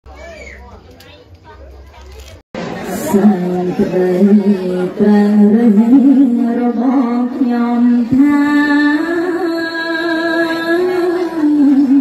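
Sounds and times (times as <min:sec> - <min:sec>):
quiet speech: 0:00.1 - 0:12.0
woman chanting into microphone: 0:03.0 - 0:12.0.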